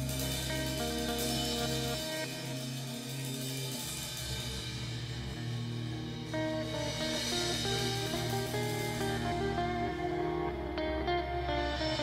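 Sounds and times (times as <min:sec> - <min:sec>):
drums and cymbals: 0:00.0 - 0:12.0
electric guitar: 0:00.0 - 0:12.0.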